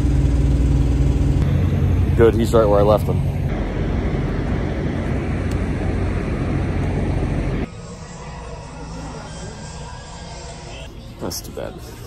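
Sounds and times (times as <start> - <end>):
low rumble of vehicles: 0.0 - 9.0.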